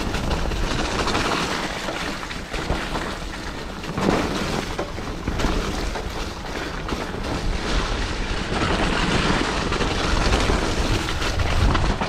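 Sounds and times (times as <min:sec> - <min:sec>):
bike rattling over bumps: 0:00.0 - 0:12.0
bike tyres rumbling on dirt: 0:00.0 - 0:12.0.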